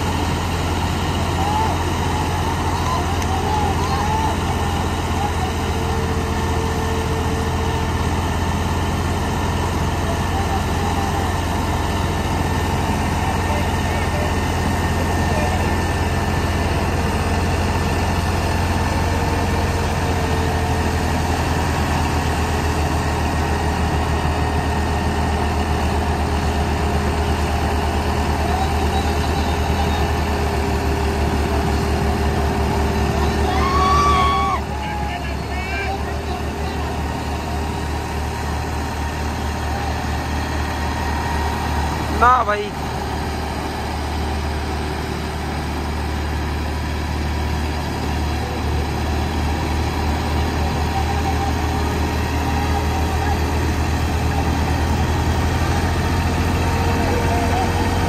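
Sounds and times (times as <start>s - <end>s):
tractor diesel engines under load: 0.0s - 58.0s
faint voices of onlookers: 48.0s - 58.0s.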